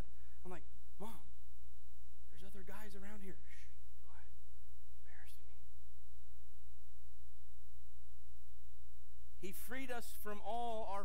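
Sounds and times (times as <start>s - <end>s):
steady low hum: 0.0s - 11.0s
whispered breathy speech: 0.5s - 1.3s, 2.3s - 4.4s, 5.0s - 5.7s.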